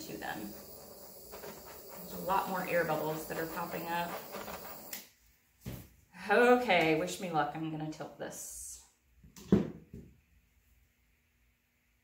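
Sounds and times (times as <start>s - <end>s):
torch hissing: 0.0s - 5.1s.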